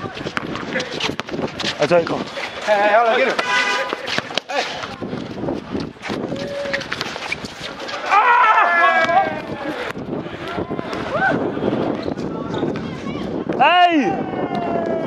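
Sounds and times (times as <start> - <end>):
running footsteps: 0.0 - 13.1
players shouting: 6.3 - 11.6.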